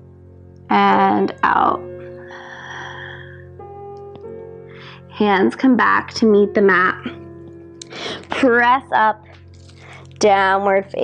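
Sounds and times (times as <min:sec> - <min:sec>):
calm instrumental music: 0:00.0 - 0:11.0.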